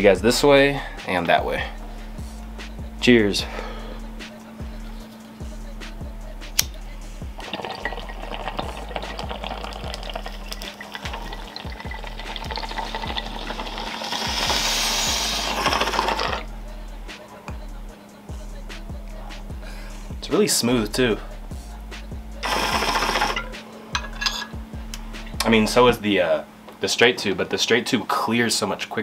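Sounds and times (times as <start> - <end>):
water bubbling in bong: 7.4 - 16.4.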